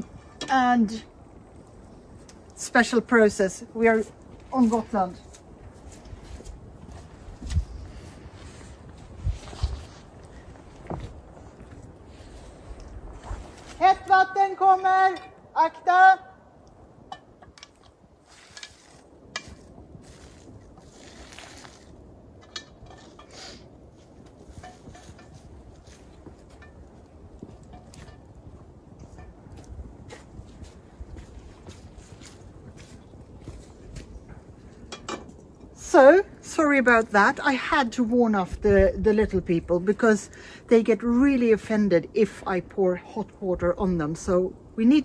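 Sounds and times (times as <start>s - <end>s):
woman shouting a warning: 13.8s - 16.4s
water poured onto ground: 18.2s - 22.0s.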